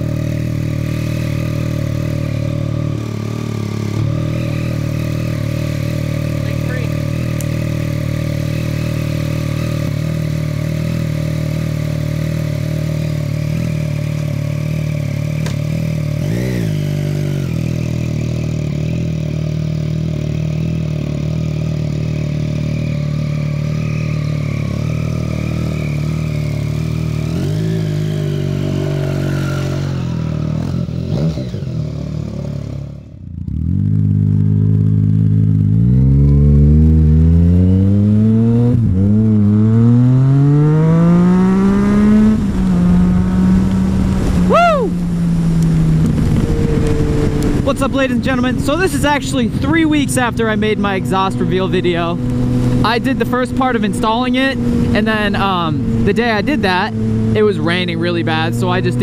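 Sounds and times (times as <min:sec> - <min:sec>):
motorcycle engine idling and revving: 0:00.0 - 0:59.0.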